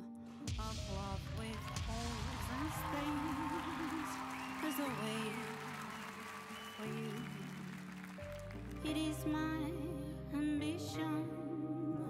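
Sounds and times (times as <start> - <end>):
person singing: 0.0 - 5.8, 6.5 - 7.7, 8.8 - 12.0
soft ballad accompaniment: 0.0 - 12.0.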